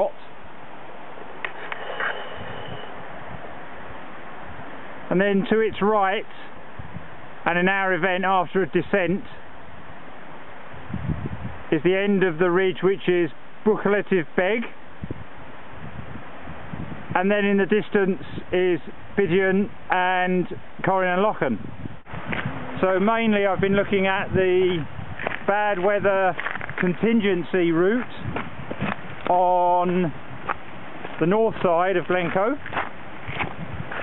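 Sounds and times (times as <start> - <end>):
wind noise on microphone: 1.0 - 34.0.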